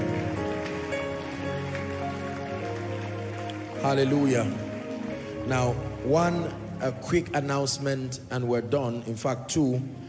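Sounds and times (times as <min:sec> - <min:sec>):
congregation clapping: 0:00.0 - 0:06.5
music of long held chords: 0:00.0 - 0:10.0.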